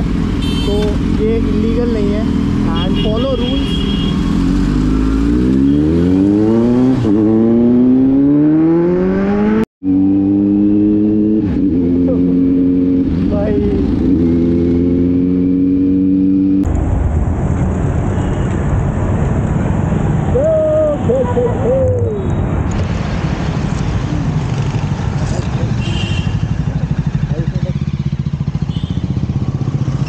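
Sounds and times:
motorcycle engine accelerating: 4.1s - 16.7s.

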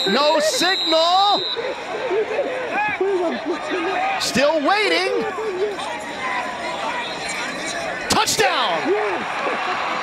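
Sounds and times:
stadium background noise: 0.0s - 10.0s.

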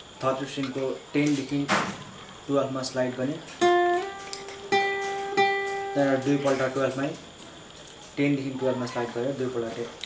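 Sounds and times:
acoustic guitar notes picked: 3.4s - 7.2s.

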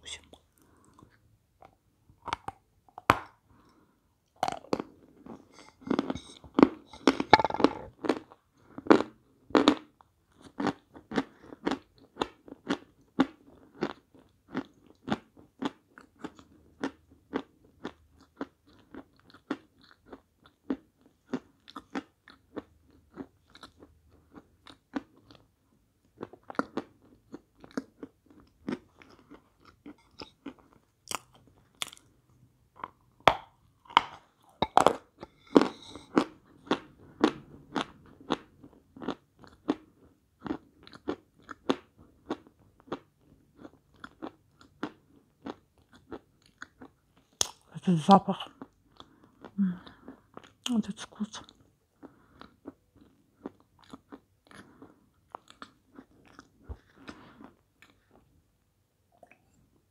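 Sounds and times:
person chewing crunchy chalk: 4.4s - 25.5s, 32.8s - 47.6s, 51.4s - 58.2s.

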